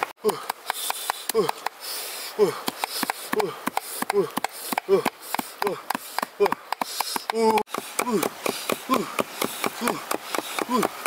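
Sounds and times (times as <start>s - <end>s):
blades chopping on stone: 2.6s - 11.0s.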